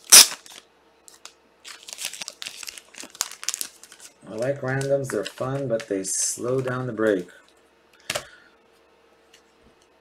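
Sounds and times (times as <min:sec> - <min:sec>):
card pack wrapper crinkling: 0:00.0 - 0:07.3.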